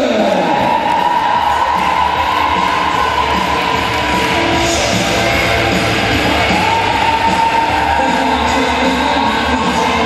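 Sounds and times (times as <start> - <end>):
crowd cheering: 0.0 - 10.0
loud music: 0.0 - 10.0.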